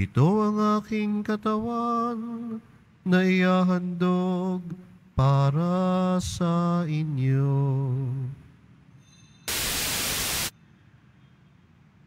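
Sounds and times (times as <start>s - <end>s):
burst of static hiss: 9.5s - 10.5s.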